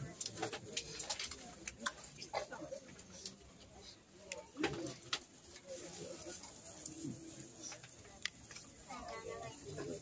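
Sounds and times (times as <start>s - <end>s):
faint murmured voices: 0.0s - 10.0s.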